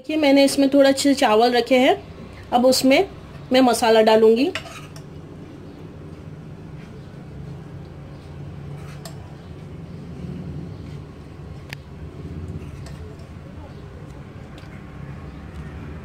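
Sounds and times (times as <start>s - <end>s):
low background rumble: 5.2s - 16.0s.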